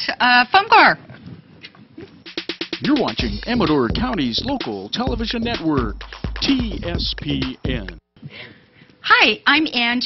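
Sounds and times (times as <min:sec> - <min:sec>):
announcer speaking: 0:02.8 - 0:08.0.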